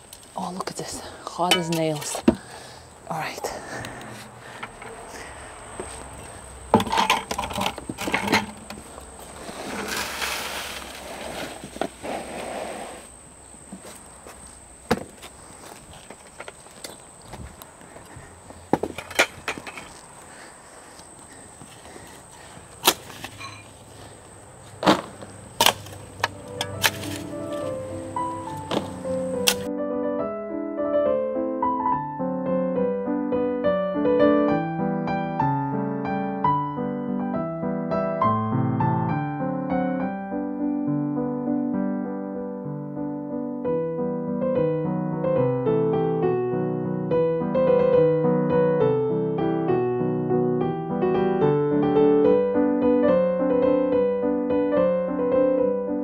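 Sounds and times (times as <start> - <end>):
shovel blade knocking: 1.5 - 2.2
scraping of soil and sand: 3.7 - 13.1, 18.6 - 29.7
light background music: 26.2 - 29.7.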